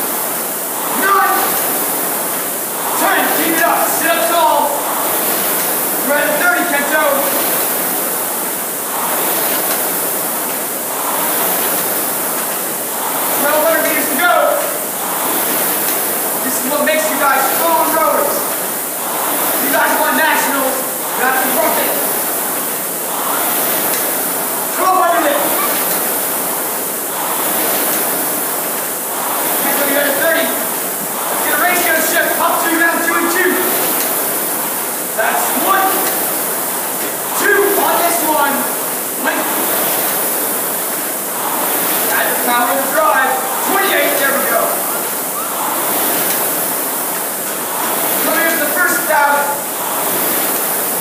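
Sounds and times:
rowing machine fan whooshing: 0.0s - 51.0s.

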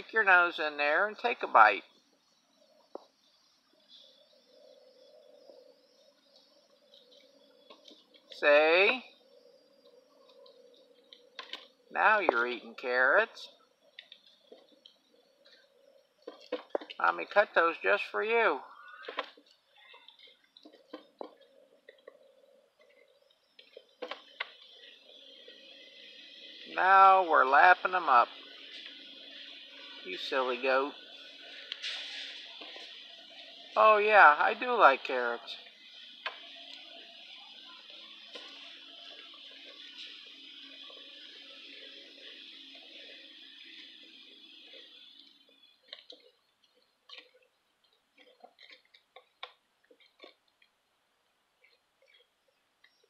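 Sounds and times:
low hum and hiss: 0.0s - 48.2s
goat crunching carrots: 45.9s - 50.8s.

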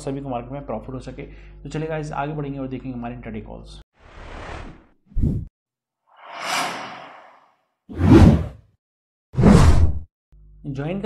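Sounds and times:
whoosh: 6.2s - 8.6s.

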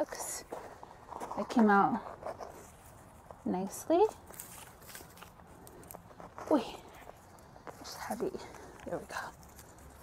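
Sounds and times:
soil and roots crackling: 0.0s - 10.0s.

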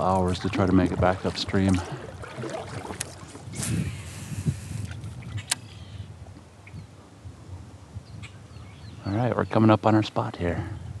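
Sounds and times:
paddle splashing in water: 0.0s - 5.6s.

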